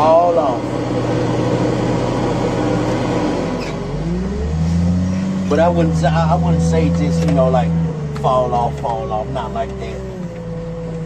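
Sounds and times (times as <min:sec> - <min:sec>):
diesel engine revving: 0:00.0 - 0:11.0.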